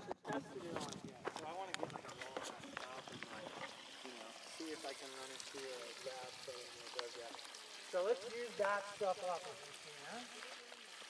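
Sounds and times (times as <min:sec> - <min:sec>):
people talking indistinctly: 0:00.0 - 0:10.9.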